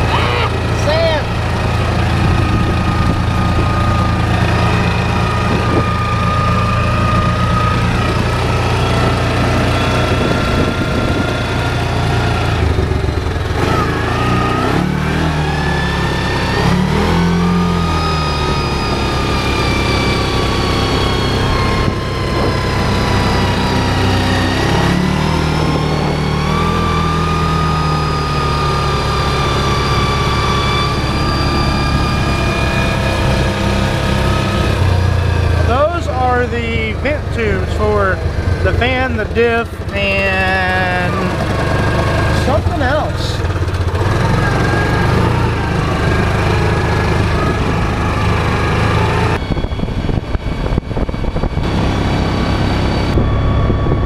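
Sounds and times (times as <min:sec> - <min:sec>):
man talking: 0:00.0 - 0:01.3, 0:35.6 - 0:41.4, 0:42.3 - 0:43.5
high whine: 0:00.0 - 0:54.0
utility vehicle engine running: 0:00.0 - 0:54.0.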